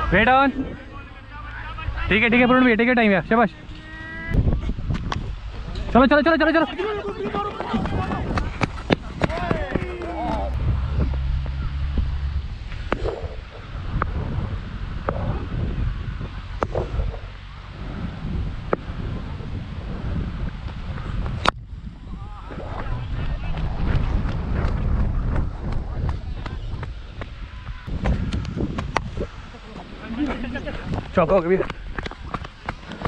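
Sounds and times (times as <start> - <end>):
wind buffeting microphone: 0.0 - 33.0
faint voices calling: 5.6 - 10.6.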